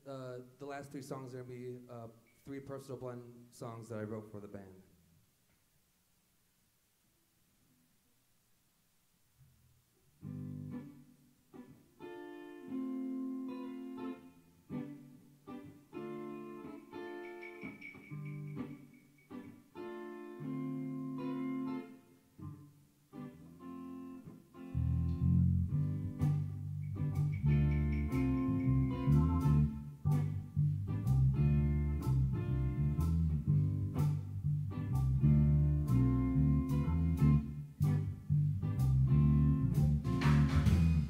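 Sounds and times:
electric guitar chords: 10.2s - 41.0s
bass and drums: 24.8s - 41.0s.

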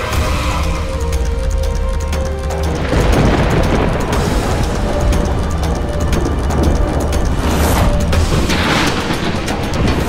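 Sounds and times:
churning water rushing: 0.0s - 10.0s
dramatic background music: 0.0s - 10.0s.

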